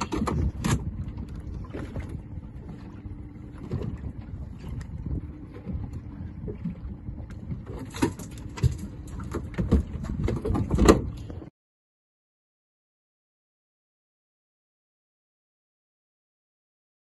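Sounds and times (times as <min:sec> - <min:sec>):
water against boat hull: 0:00.0 - 0:11.5
wind rumbling on microphone: 0:00.0 - 0:11.5.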